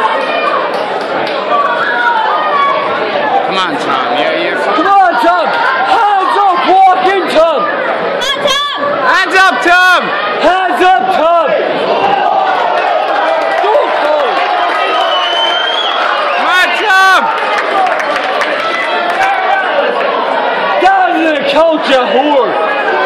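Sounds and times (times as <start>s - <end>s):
crowd shouting and cheering: 0.0s - 23.0s
hubbub of voices: 0.0s - 23.0s.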